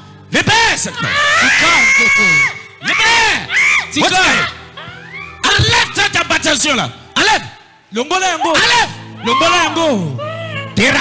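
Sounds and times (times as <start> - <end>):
girl screaming: 0.7 - 6.0, 8.4 - 11.0.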